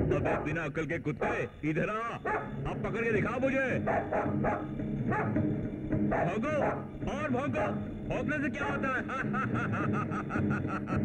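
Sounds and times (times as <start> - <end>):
dog barking: 0.1 - 0.6, 1.2 - 1.5, 2.2 - 2.6, 3.8 - 5.4, 6.1 - 6.9, 7.6 - 7.8, 8.6 - 8.8.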